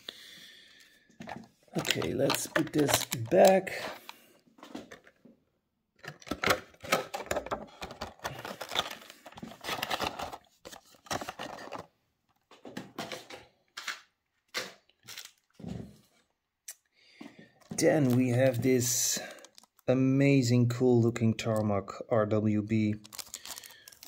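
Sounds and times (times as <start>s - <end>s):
plastic tray crackling and clicking: 1.4s - 4.1s.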